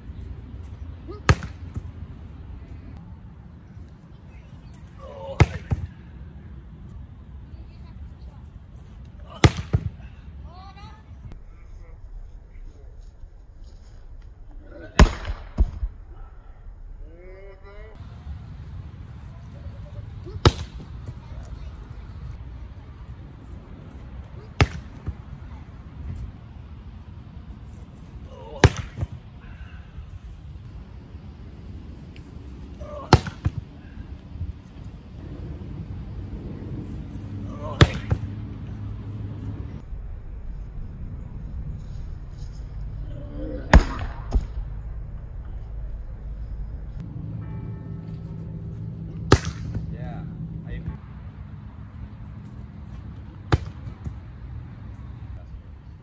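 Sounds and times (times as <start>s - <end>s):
volleyball spike smacks: 1.3s - 1.9s, 20.4s - 20.8s, 24.6s - 25.1s, 28.6s - 29.2s, 37.8s - 38.3s, 49.3s - 49.8s
low steady rumble: 10.0s - 56.0s.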